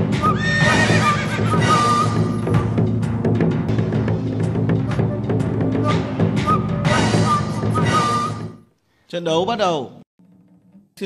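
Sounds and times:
music: 0.0 - 11.0
horse whinnying: 0.2 - 2.4.

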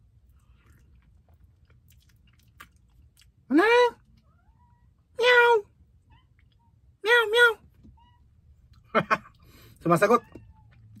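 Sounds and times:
cat meowing: 10.0 - 11.0.

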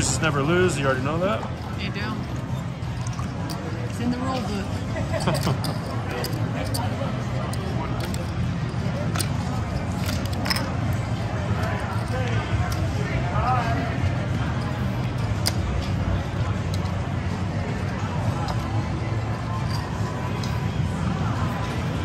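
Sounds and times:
casino chips clicking: 2.3 - 4.5, 5.2 - 10.8.

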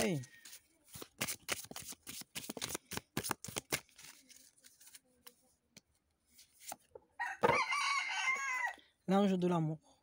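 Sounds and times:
rooster crowing: 7.2 - 8.8.

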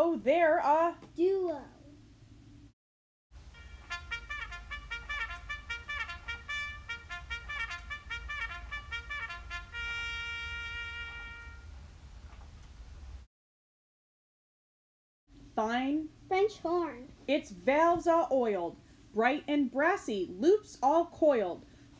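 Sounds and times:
children imitating brass with mouths: 3.6 - 11.6.

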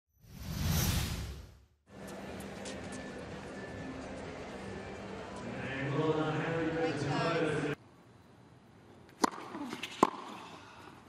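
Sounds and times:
stadium ambience: 1.9 - 11.0.

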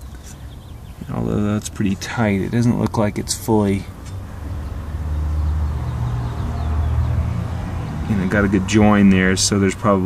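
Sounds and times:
car engine idling: 0.1 - 10.0.

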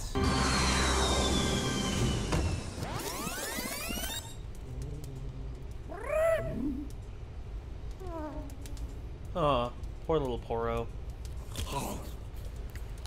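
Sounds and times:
sped-up cartoon soundtrack: 0.0 - 4.4
squeaky creature cry: 5.9 - 6.7.

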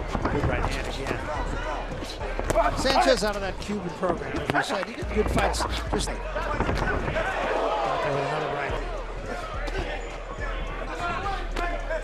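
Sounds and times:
crowd shouting: 0.9 - 4.0, 5.0 - 12.0.

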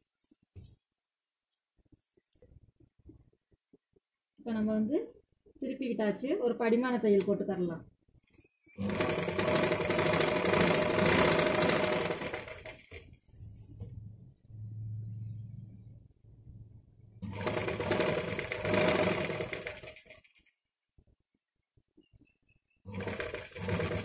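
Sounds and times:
sewing machine stitching: 8.7 - 13.1, 17.2 - 20.4, 22.9 - 24.0.

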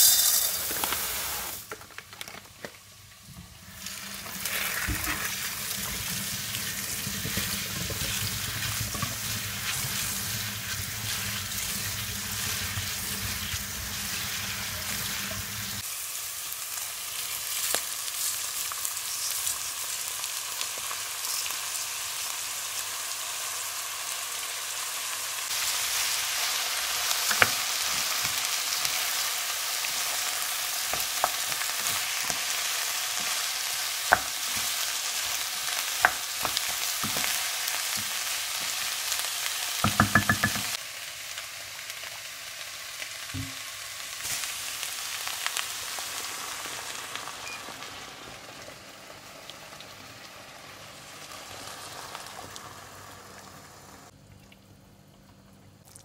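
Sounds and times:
food sizzling in a pan: 0.0 - 1.8, 2.5 - 54.2
tap water running: 3.3 - 14.4, 39.8 - 40.7
wooden spoon knocking on pan: 39.8 - 40.8, 43.4 - 43.6.

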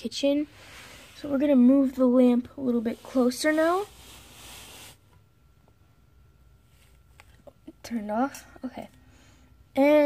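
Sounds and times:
soft handling rustle: 0.6 - 5.1, 6.6 - 7.6.

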